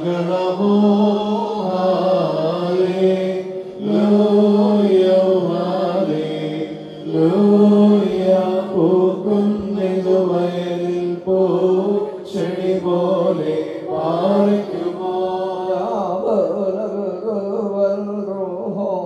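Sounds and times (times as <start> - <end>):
voices chanting: 0.0 - 16.0.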